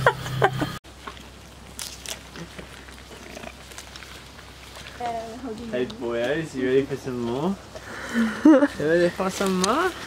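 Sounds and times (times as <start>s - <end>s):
alpacas feeding: 0.9s - 10.0s.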